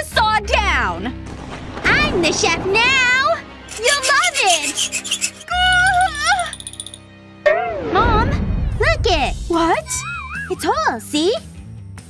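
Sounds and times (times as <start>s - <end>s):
background music: 0.0s - 12.0s
rasping rub: 3.7s - 6.7s.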